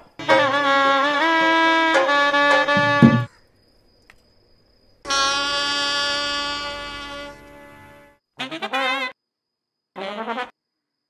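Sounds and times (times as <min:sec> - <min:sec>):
sustained horn-like notes: 0:00.2 - 0:03.3.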